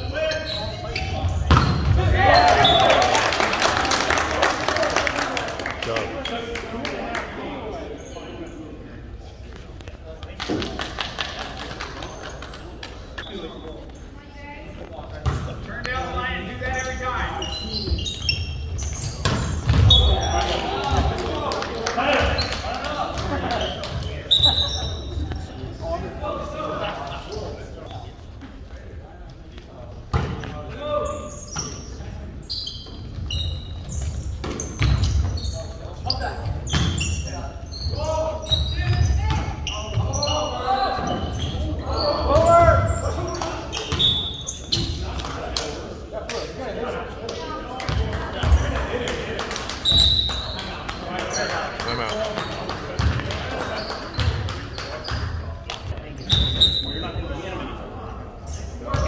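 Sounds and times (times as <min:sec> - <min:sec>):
players and spectators shouting: 0:02.0 - 0:03.5.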